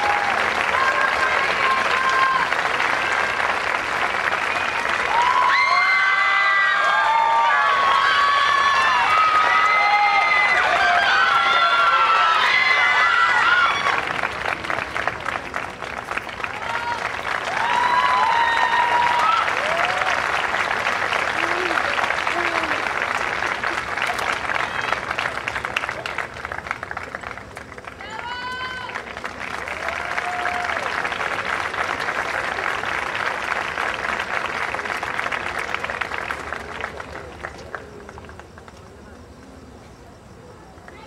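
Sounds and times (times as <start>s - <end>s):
shouts and cheers: 0.0s - 3.4s, 4.6s - 14.1s, 16.5s - 20.5s, 28.0s - 31.0s
audience applauding: 0.0s - 39.0s.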